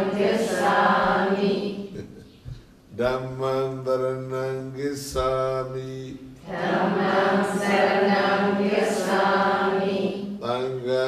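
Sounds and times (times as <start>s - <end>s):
group chanting in unison: 0.0s - 2.2s, 6.4s - 10.6s
low voice chanting: 0.0s - 11.0s.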